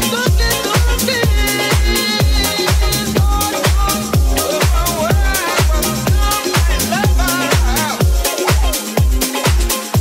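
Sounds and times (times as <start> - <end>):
kick drum beat: 0.0 - 10.0.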